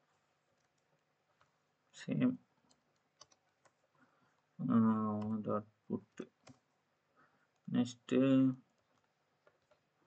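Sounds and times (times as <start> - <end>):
faint keyboard clicks: 0.5 - 1.6, 2.6 - 5.4, 6.1 - 6.8, 8.5 - 10.0.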